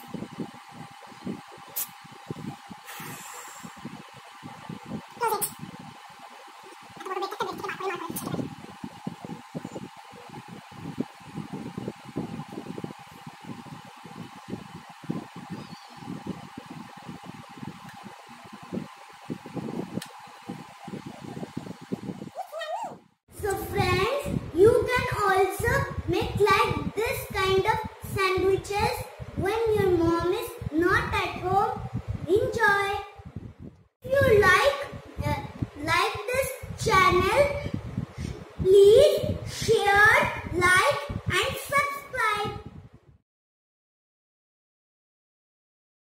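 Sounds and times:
background hum: 0.0 - 43.2.

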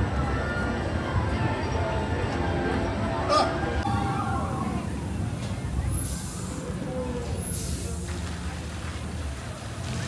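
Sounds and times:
low crowd rumble: 0.0 - 10.0
steam hissing: 5.9 - 6.8.

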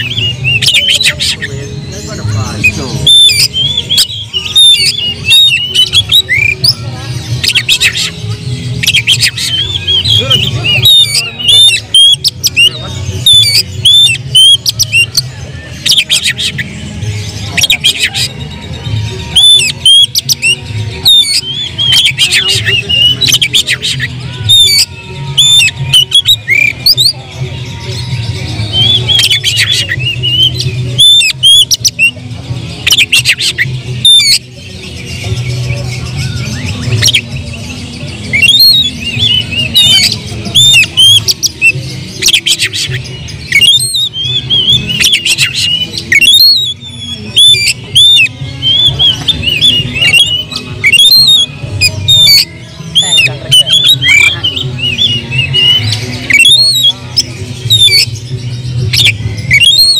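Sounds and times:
bird singing whistled phrases: 2.2 - 6.8, 8.8 - 16.7, 19.4 - 27.2, 28.7 - 32.2, 38.3 - 58.3, 58.9 - 59.9.

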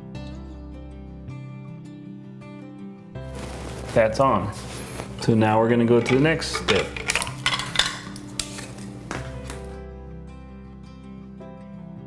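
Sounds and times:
background music: 0.0 - 12.0
metal can lid clinking: 5.2 - 9.7.

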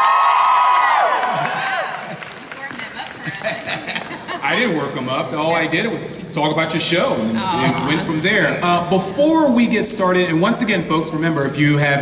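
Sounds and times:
audience cheering and whooping: 0.0 - 4.4.

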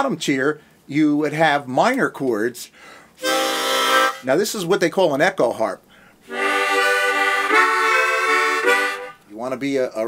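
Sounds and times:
harmonica playing held chords: 3.2 - 4.3, 6.3 - 9.2.

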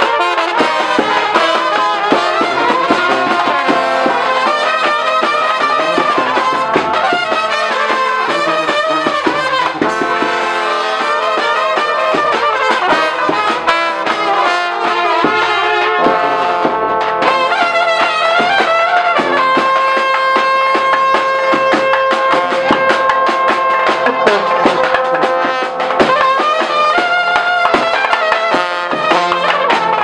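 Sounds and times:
brass band playing: 0.0 - 30.0.

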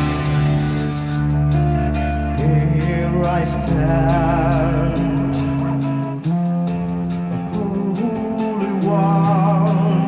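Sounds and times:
distorted electric guitars and bass: 0.0 - 10.0.

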